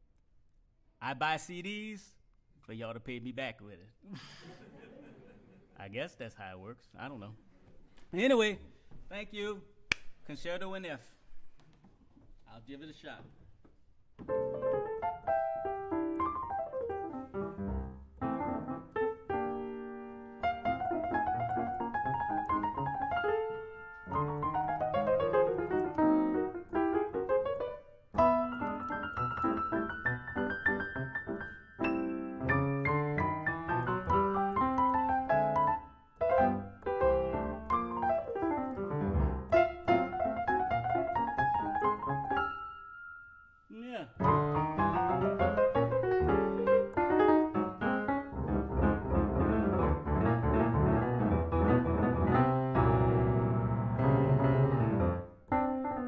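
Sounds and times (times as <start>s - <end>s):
solo piano: 14.2s - 43.3s, 44.2s - 56.0s.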